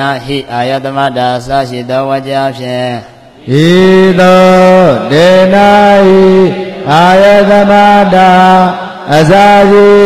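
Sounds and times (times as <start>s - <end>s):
man chanting in long tones: 0.0s - 10.0s.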